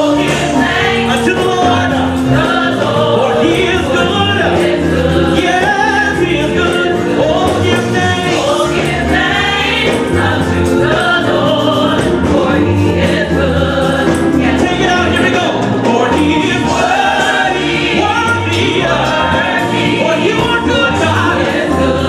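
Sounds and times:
choir singing: 0.0 - 22.0
man singing lead vocal: 0.0 - 22.0.

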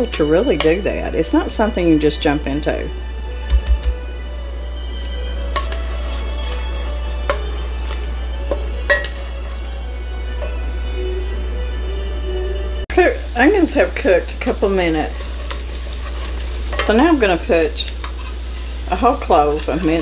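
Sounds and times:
onions sizzling in a pan: 0.0 - 3.4, 4.2 - 11.5, 12.1 - 20.0
faint background music: 0.0 - 20.0
wooden spatula scraping and tapping pan: 5.0 - 9.3, 18.0 - 18.4.

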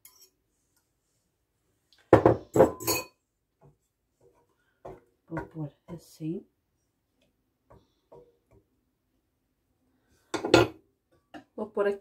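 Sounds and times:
crockery and utensils clattering: 2.2 - 3.2.

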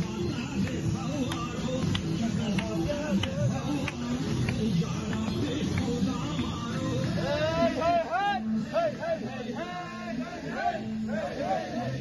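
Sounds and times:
marching crowd voices: 0.0 - 12.0
music or chanting: 0.0 - 12.0.

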